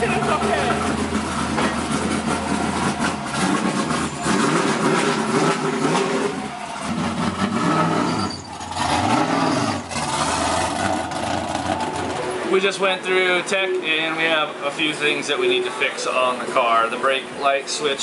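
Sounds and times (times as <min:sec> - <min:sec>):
car engine throttle blips: 0:00.0 - 0:12.8.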